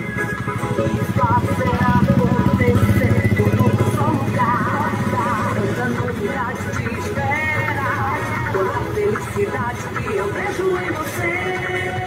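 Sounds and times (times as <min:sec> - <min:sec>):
person singing with music: 0:00.0 - 0:12.0
small motorcycle engine puttering: 0:00.1 - 0:06.6.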